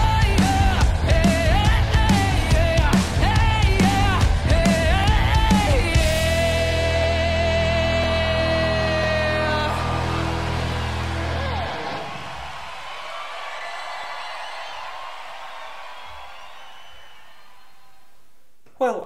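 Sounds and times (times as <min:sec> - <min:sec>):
rock band final chord: 0:00.0 - 0:12.5
crowd cheering and whooping: 0:08.0 - 0:18.2.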